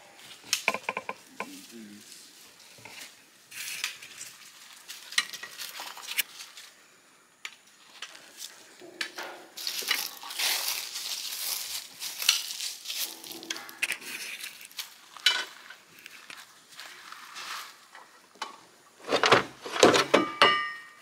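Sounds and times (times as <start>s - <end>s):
footsteps crunching dry leaves: 1.5s - 6.8s, 9.6s - 17.9s.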